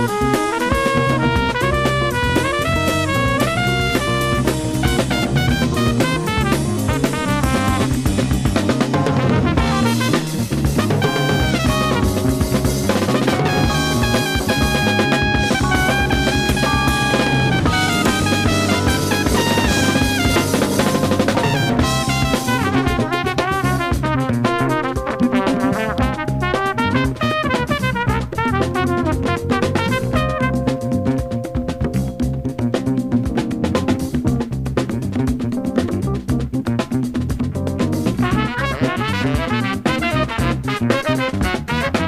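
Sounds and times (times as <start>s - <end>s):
brass lines: 0.0s - 31.3s, 38.2s - 42.0s
drum kit groove: 0.0s - 42.0s
jazz-funk band playing: 0.0s - 42.0s.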